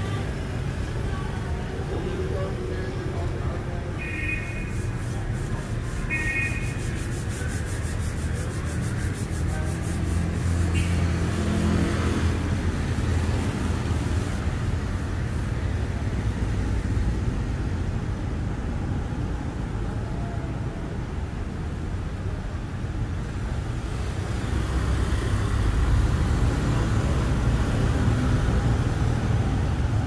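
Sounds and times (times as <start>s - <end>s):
traffic rumble: 0.0s - 30.0s.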